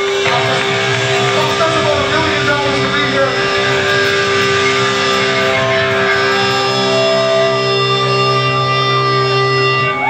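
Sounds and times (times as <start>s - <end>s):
electric guitar held note: 0.0s - 9.7s
picked guitar melody notes: 0.0s - 10.0s.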